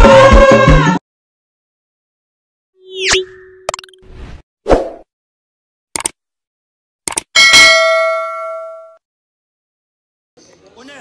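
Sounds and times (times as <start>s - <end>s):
notification bell ding: 7.4s - 9.0s.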